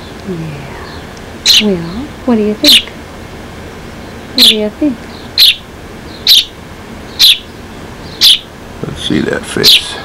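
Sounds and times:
sparrow chirping: 0:00.0 - 0:03.0, 0:04.0 - 0:08.6, 0:09.6 - 0:10.0.

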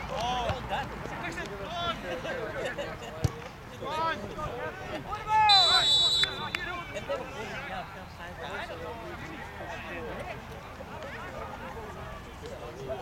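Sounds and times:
players shouting: 0:03.8 - 0:07.8
referee's whistle blast: 0:05.4 - 0:06.9.

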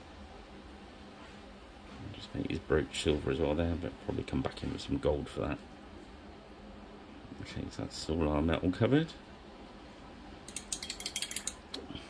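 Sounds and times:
small hard clicks and rattles: 0:10.5 - 0:11.7.

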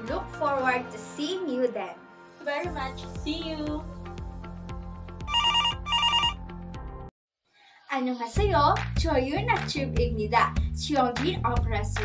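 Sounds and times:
electronic telephone ringing: 0:05.3 - 0:06.4
background music with beat: 0:08.4 - 0:12.0.

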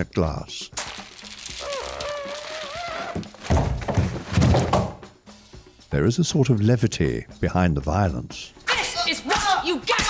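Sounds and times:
skin squealing on glass: 0:01.5 - 0:03.3
heavy thumps: 0:03.1 - 0:05.0.

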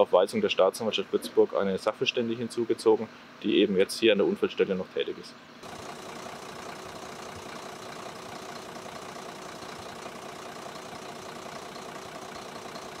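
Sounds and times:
vehicle engine idling: 0:05.6 - 0:13.0.

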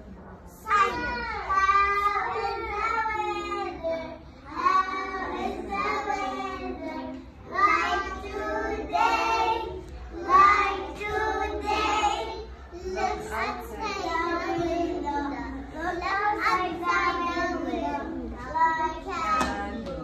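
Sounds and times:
young children singing: 0:00.6 - 0:20.0.

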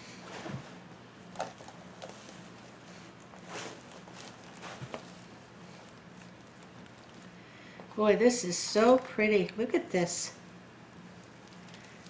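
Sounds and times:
plastic mesh rustling and crinkling: 0:01.3 - 0:07.4.

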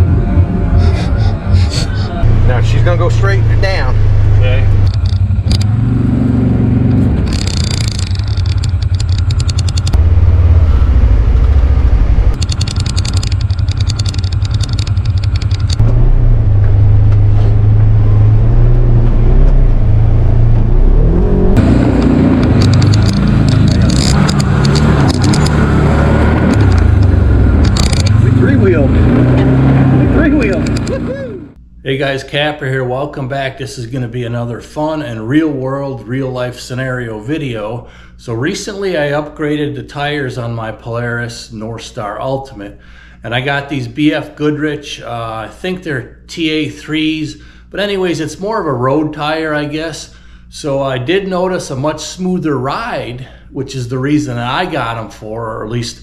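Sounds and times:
utv engine running: 0:00.0 - 0:31.7.

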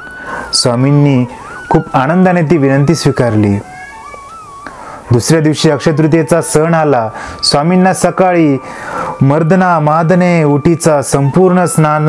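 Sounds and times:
soft flute-like music: 0:00.0 - 0:12.0
man speaking: 0:00.5 - 0:03.9, 0:05.1 - 0:12.0.

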